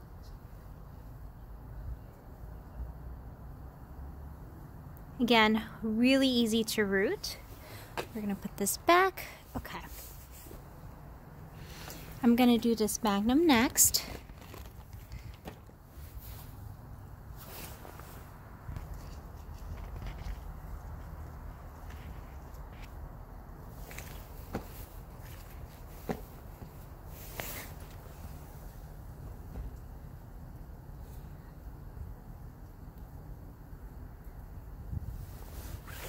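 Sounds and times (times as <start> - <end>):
plastic bag crinkling: 13.9 - 15.8.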